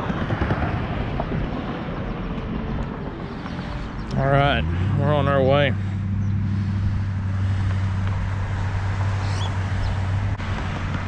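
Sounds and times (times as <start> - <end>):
road traffic rumbling: 0.0 - 11.0.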